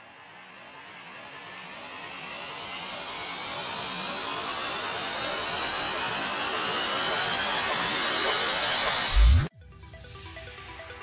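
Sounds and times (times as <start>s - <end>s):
rising noise sweep: 0.8s - 9.5s.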